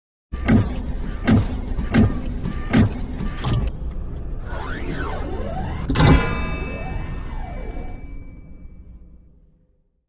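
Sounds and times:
heavy mechanical thuds: 0.4 - 3.8
low mechanical hum: 0.4 - 9.7.

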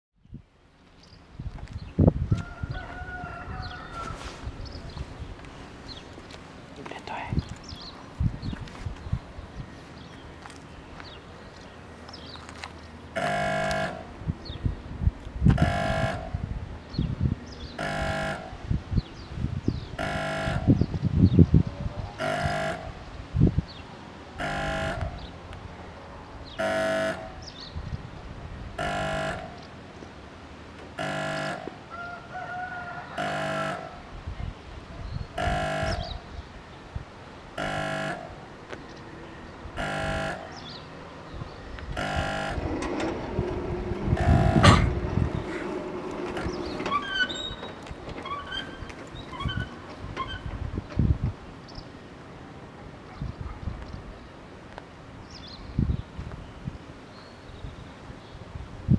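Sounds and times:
level crossing warning horn blasts: 13.2 - 14.2, 15.6 - 16.5, 17.8 - 18.7, 20.0 - 20.9, 22.2 - 23.1, 24.4 - 25.3, 26.5 - 27.5, 28.8 - 29.7, 31.0 - 31.8, 33.2 - 34.1, 35.4 - 36.3, 37.6 - 38.5, 39.8 - 40.9, 42.0 - 42.8, 44.1 - 45.4.

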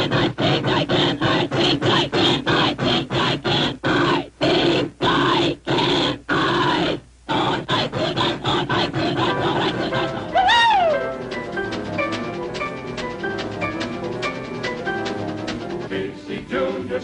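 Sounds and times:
cartoon steam locomotive chuffing: 0.0 - 17.0.

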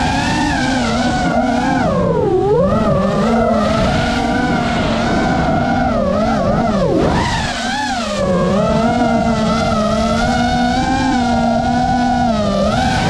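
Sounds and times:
drone propellers whining: 0.0 - 13.0.

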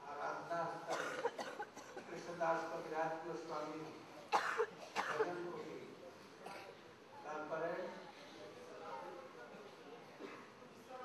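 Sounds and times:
person coughing: 0.9 - 2.1, 4.4 - 5.3.

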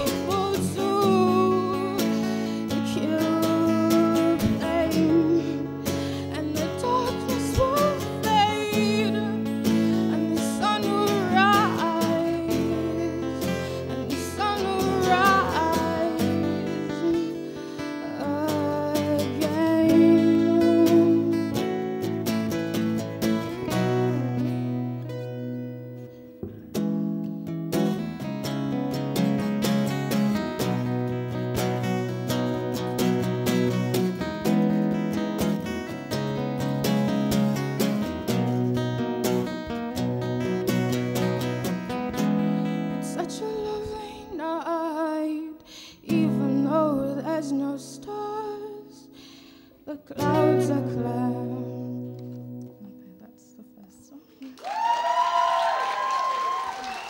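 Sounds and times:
woman singing: 0.0 - 22.0, 23.2 - 25.5, 42.6 - 49.2, 49.8 - 54.6
acoustic guitars playing: 0.0 - 54.6.

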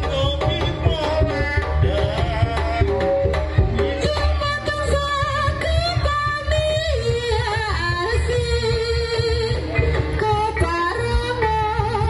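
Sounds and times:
barrel drum: 0.0 - 12.0.

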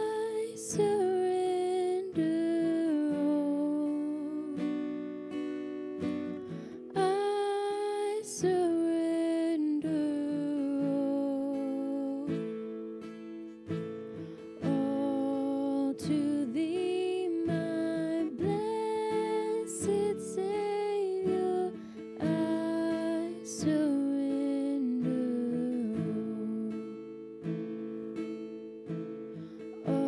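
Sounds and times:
soft acoustic guitar picking: 0.0 - 30.0.

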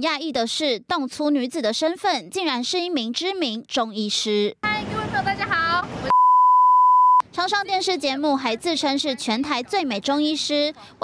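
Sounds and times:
woman talking: 0.0 - 5.9, 7.2 - 11.0
censor bleep: 6.1 - 7.2.

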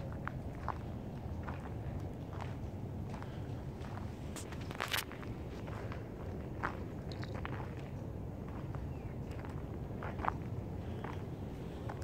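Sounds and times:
steady low rumble: 0.0 - 12.0
footsteps crunching on dry leaves: 4.3 - 5.2.

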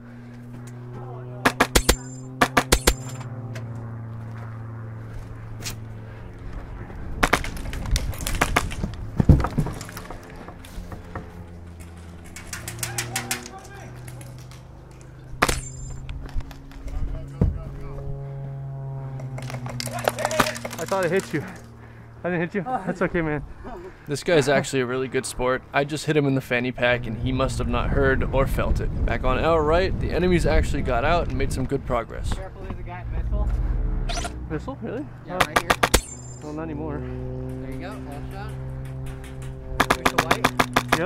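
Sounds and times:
airsoft gun firing: 1.4 - 3.2, 7.2 - 8.8, 15.4 - 15.8, 35.4 - 36.3, 39.8 - 41.0.

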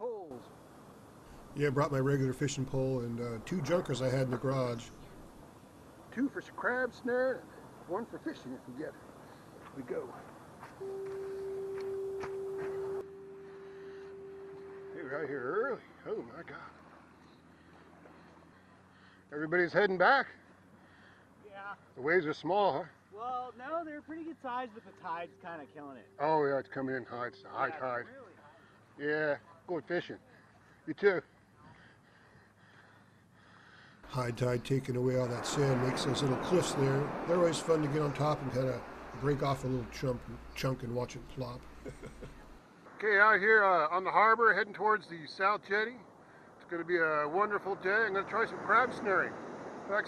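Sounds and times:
faint background hiss: 0.0 - 50.0
steady pure tone: 0.3 - 8.6, 10.7 - 17.6, 23.2 - 28.8, 34.0 - 44.1.

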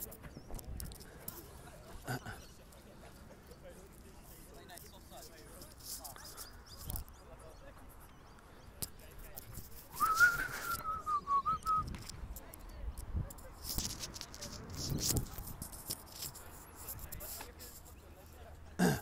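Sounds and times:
faint distant voices: 0.0 - 19.0
person whistling wavering note: 10.0 - 11.8.

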